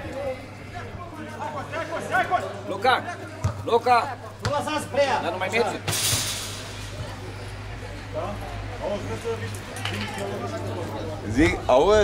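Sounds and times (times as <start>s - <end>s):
scattered voices: 0.0s - 12.0s.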